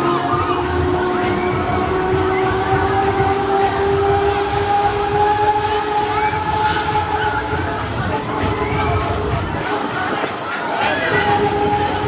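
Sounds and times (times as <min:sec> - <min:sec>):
steady low rumble: 0:00.0 - 0:09.9
crowd voices: 0:00.0 - 0:12.0.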